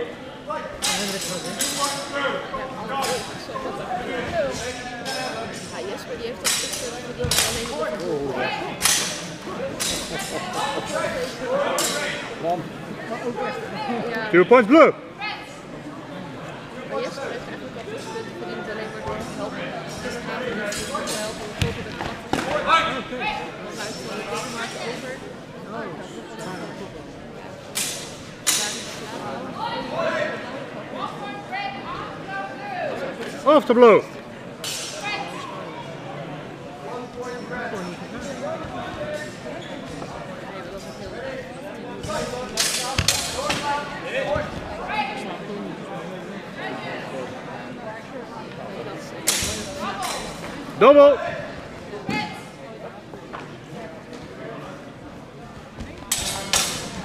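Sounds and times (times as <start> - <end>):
murmur of voices: 0.0 - 57.0
people talking: 0.0 - 57.0.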